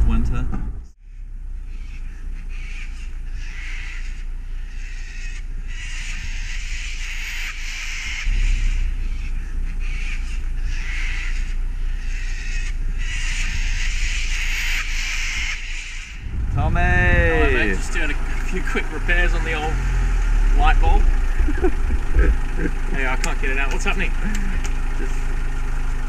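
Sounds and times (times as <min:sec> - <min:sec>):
steady low rumble: 0:00.0 - 0:26.0
birds calling: 0:01.0 - 0:26.0.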